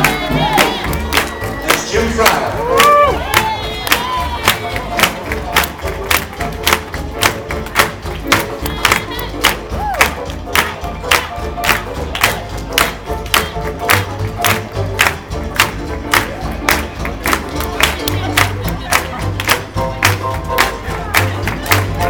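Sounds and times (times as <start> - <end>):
crowd cheering and clapping: 0.0 - 22.0
jazz band playing swing: 0.1 - 22.0.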